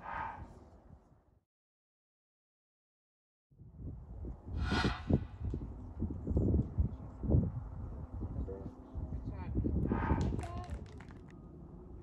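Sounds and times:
wind buffeting microphone: 0:03.6 - 0:11.1.

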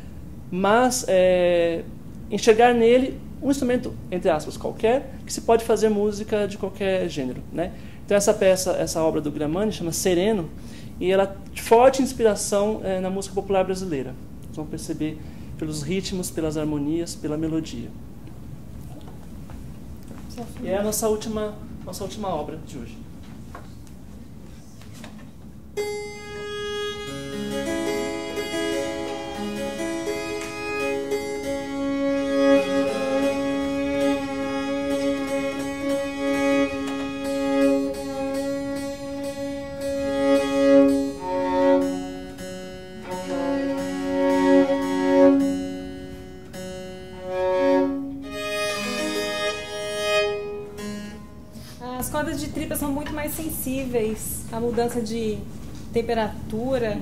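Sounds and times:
violin being tuned: 0:25.8 - 0:51.8.

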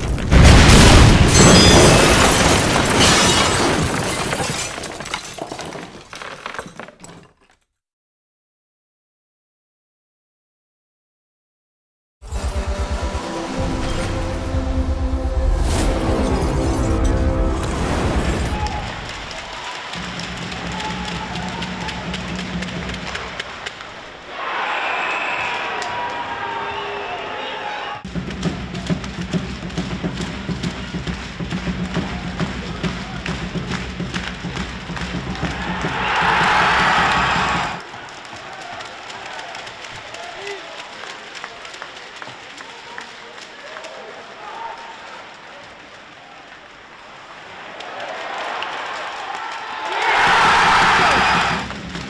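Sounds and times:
arena music: 0:12.2 - 0:24.1
crowd cheering: 0:15.8 - 0:52.0
sticks and puck clicking on ice: 0:37.8 - 0:46.7.

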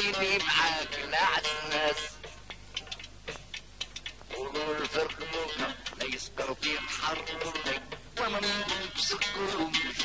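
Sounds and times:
sharp percussion taps: 0:00.1 - 0:08.0.

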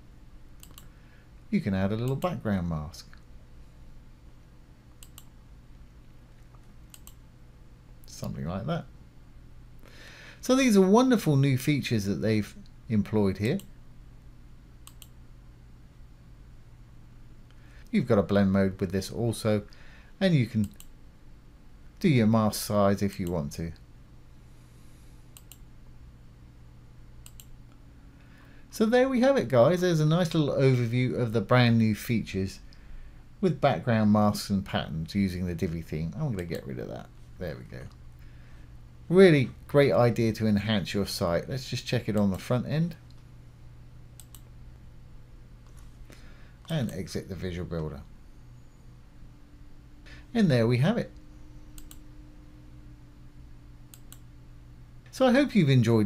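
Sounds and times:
faint low hum: 0:00.0 - 0:56.0
computer mouse click: 0:00.6 - 0:00.9, 0:05.0 - 0:05.3, 0:06.4 - 0:07.2, 0:14.8 - 0:15.2, 0:25.3 - 0:25.7, 0:27.2 - 0:27.6, 0:44.2 - 0:44.5, 0:51.7 - 0:52.0, 0:53.9 - 0:54.3.

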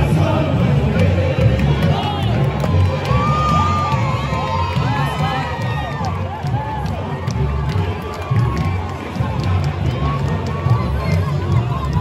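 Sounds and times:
crowd cheering and singing: 0:00.0 - 0:12.0.

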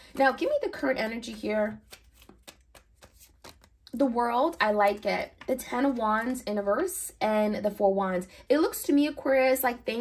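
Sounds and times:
cards clicking and flicking: 0:01.7 - 0:03.9.

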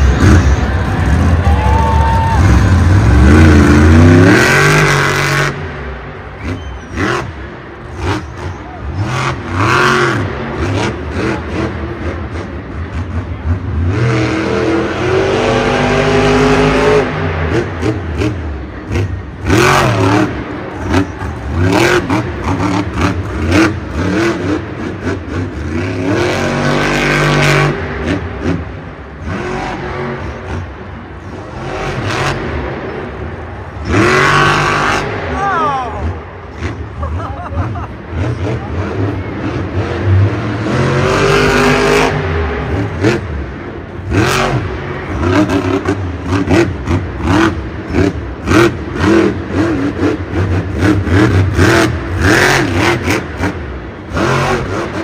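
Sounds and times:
monster truck engine revving: 0:00.0 - 0:55.0.

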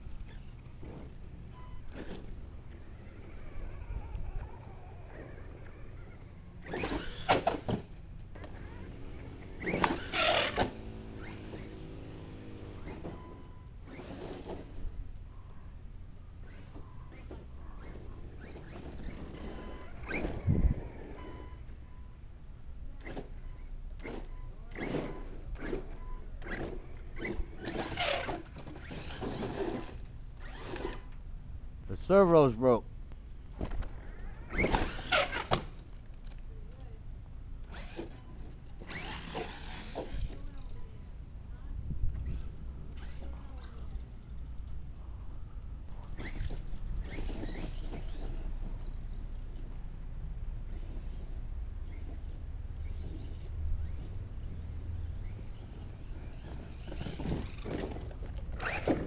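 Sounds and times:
rc truck motor whining: 0:00.0 - 0:31.3, 0:33.5 - 0:59.0
clatter and scrabbling over dirt: 0:24.8 - 0:31.2, 0:50.7 - 0:59.0.

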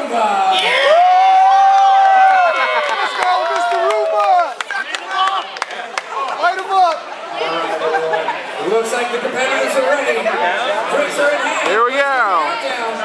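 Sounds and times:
crowd shouting and whooping: 0:00.4 - 0:08.5.

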